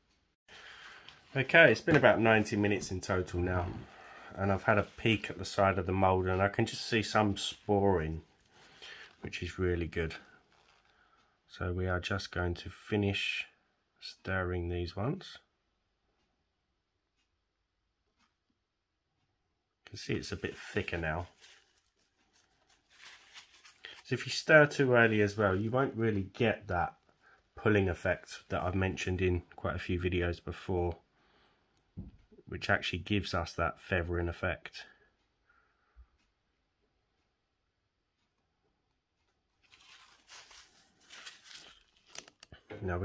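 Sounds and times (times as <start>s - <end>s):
hands handling tools rustling: 20.1s - 24.2s, 39.6s - 42.8s.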